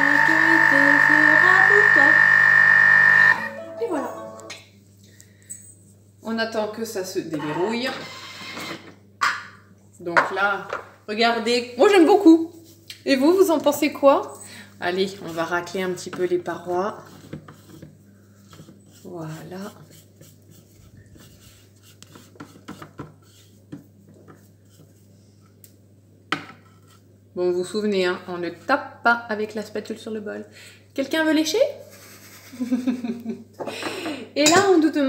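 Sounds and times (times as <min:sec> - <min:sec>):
spatula scraping bowl: 0:00.0 - 0:03.6, 0:15.1 - 0:25.0
low steady hum: 0:00.0 - 0:07.8.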